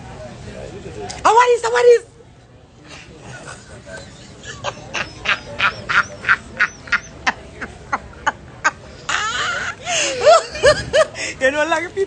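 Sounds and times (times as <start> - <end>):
stifled laughter: 3.1 - 11.2.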